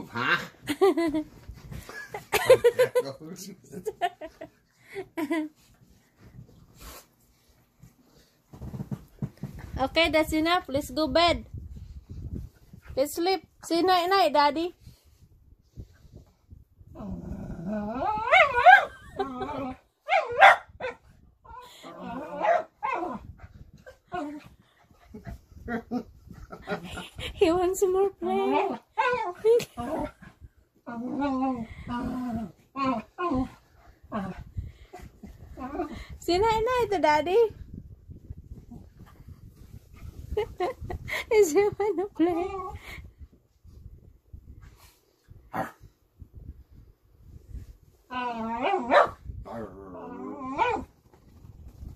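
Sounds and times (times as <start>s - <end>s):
dog play-growling and whining: 0.0s - 0.7s, 16.8s - 27.2s, 28.3s - 36.2s, 42.1s - 42.9s, 48.0s - 51.4s
dog barking: 20.1s - 21.0s, 48.9s - 49.2s.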